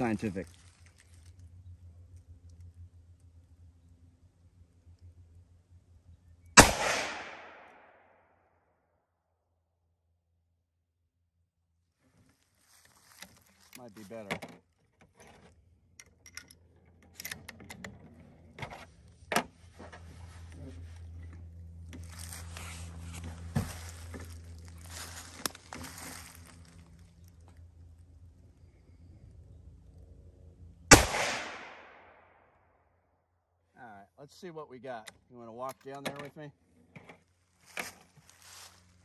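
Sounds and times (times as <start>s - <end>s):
loud rifle shot with echo: 6.6s - 8.0s, 30.9s - 32.2s.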